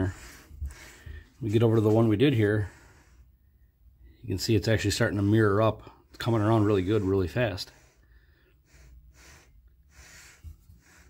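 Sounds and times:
soft breaths: 0:00.0 - 0:11.0.

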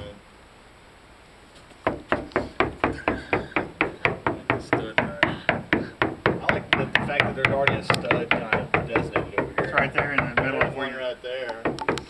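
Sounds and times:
knuckles knocking on hollow wall: 0:01.8 - 0:12.0.

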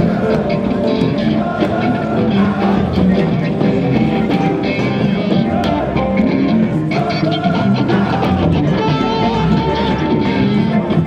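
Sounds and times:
rock music with guitar: 0:00.0 - 0:11.0.

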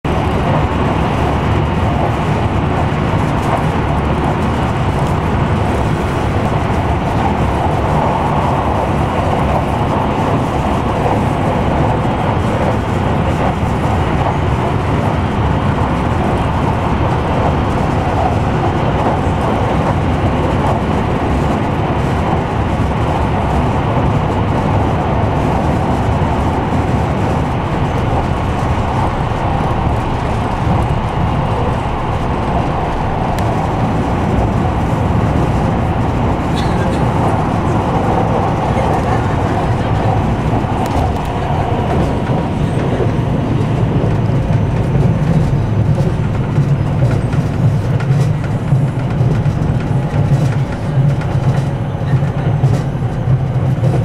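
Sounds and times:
passenger train running: 0:00.0 - 0:54.0.

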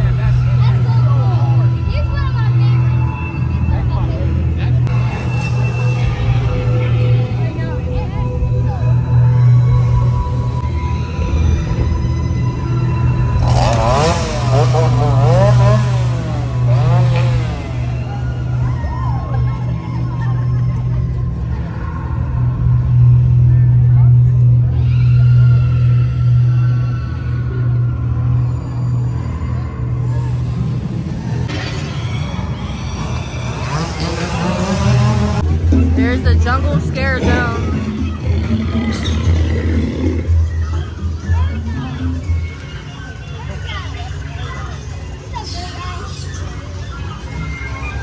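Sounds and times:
low engine-like drone: 0:00.0 - 0:48.0
voices: 0:00.0 - 0:48.0
wavering wails: 0:05.0 - 0:21.8
chainsaw engine revving: 0:13.3 - 0:18.2, 0:33.0 - 0:35.5.

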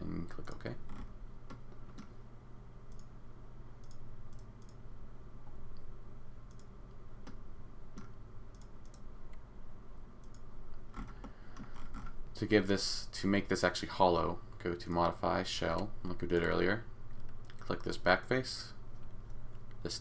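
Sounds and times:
steady low hum: 0:00.0 - 0:20.0
computer mouse clicking: 0:00.9 - 0:02.2, 0:02.9 - 0:03.1, 0:03.8 - 0:04.8, 0:06.5 - 0:07.4, 0:08.0 - 0:09.4, 0:10.2 - 0:12.2.

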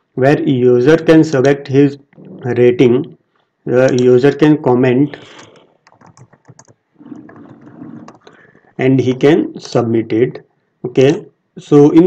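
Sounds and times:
keyboard typing clicks: 0:03.8 - 0:04.2, 0:05.2 - 0:08.4.

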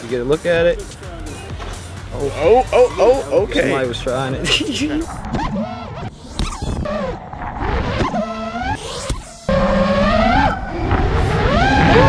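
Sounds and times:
drone motors whining: 0:00.7 - 0:12.0.

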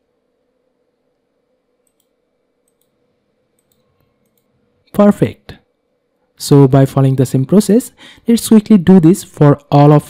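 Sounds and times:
faint electrical hum: 0:00.0 - 0:10.0
computer mouse clicks: 0:01.8 - 0:03.0, 0:03.6 - 0:04.5
man's voice: 0:05.0 - 0:05.6.

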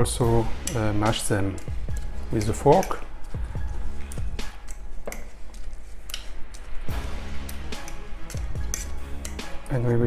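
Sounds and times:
background music: 0:00.0 - 0:10.0
fork scraping ceramic bowl: 0:00.6 - 0:09.7.

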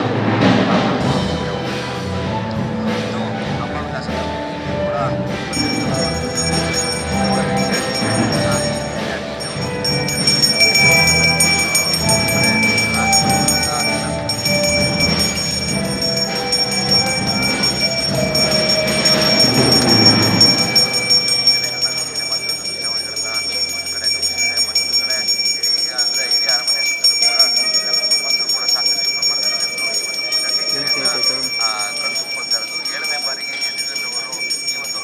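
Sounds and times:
music: 0:00.0 - 0:35.0
hand bell ringing: 0:05.5 - 0:35.0.

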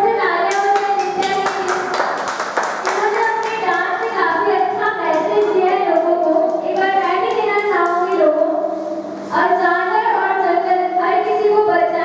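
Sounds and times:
hand clapping: 0:00.5 - 0:08.2.

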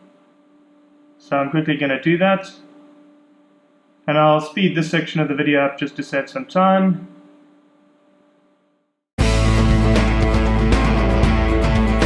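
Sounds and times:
faint hum with hiss: 0:00.0 - 0:08.8.

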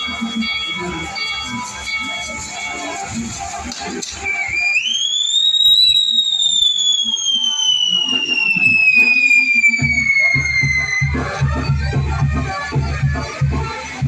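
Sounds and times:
music with heavy steady beat: 0:00.0 - 0:04.6, 0:08.3 - 0:14.0
firework crackles and pops: 0:00.0 - 0:11.5
whistling firework: 0:00.0 - 0:14.0.

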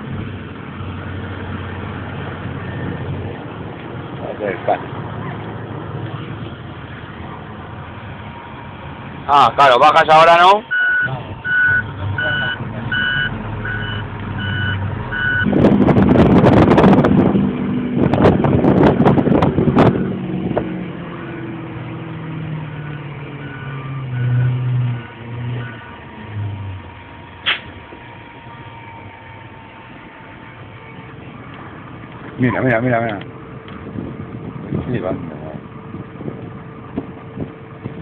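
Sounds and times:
truck engine rumble: 0:00.0 - 0:38.0
reversing alarm beeping: 0:10.7 - 0:15.5, 0:23.4 - 0:24.9.

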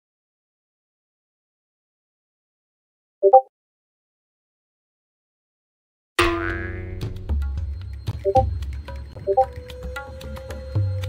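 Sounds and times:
cartoon boing sound effect: 0:06.2 - 0:07.2.

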